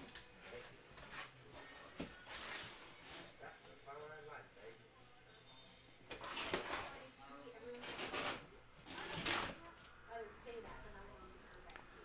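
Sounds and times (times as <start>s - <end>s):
paper and cardboard rustling: 0.0s - 3.5s, 6.1s - 7.0s, 7.7s - 9.8s.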